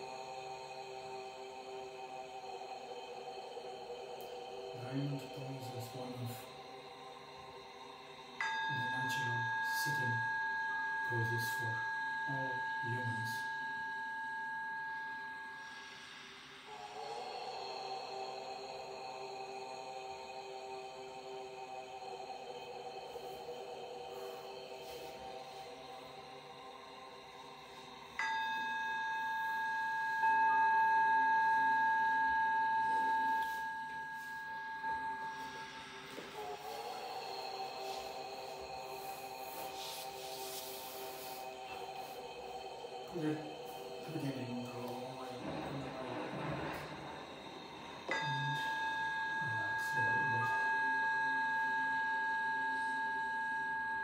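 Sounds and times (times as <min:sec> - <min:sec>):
ringing bell-like tone: 0:00.0 - 0:20.1, 0:21.3 - 0:54.0
low droning chord: 0:00.0 - 0:54.0.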